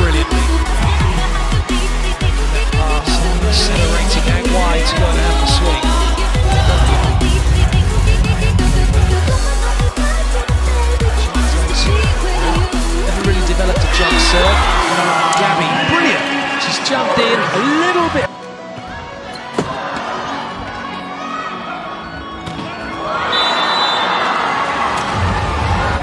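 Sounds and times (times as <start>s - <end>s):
thumping music bass: 0.0s - 14.8s
crowd noise: 0.0s - 26.0s.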